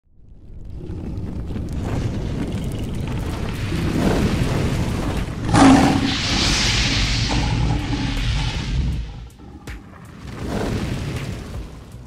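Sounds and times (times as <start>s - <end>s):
low rumble: 0.1s - 11.7s
bright hissing swell: 5.5s - 9.7s
heavy boom: 5.5s - 10.0s.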